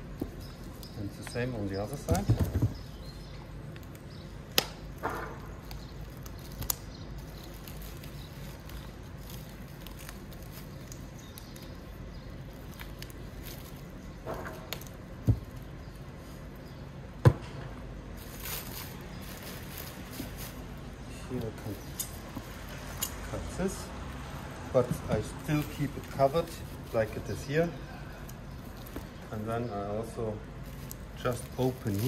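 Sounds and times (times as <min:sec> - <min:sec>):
plastic foil crinkling: 0:04.8 - 0:15.7, 0:18.2 - 0:23.0, 0:25.2 - 0:29.6, 0:30.5 - 0:32.0.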